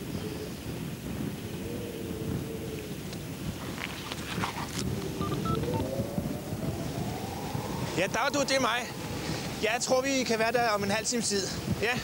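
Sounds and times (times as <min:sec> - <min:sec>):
phone electronic beeps: 0:05.2 - 0:05.9.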